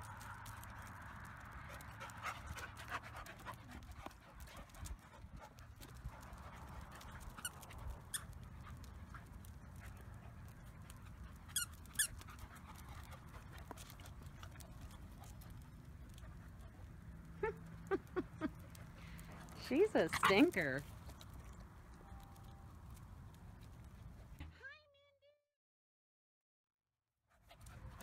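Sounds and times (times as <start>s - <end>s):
dogs playing: 0.0s - 24.5s, 27.4s - 28.0s.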